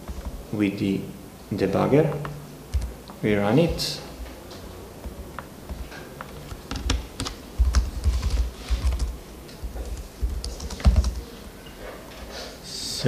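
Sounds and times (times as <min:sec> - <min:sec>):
typing on computer keyboard: 0:06.2 - 0:11.2.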